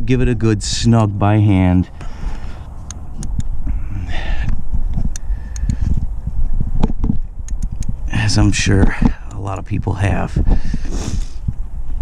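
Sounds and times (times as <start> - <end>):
microphone handling rumble: 0.0 - 12.0.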